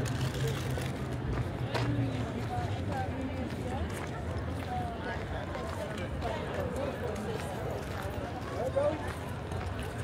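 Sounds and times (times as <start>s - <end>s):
crowd chatter: 0.0s - 10.0s
footsteps on pavement: 1.1s - 10.0s.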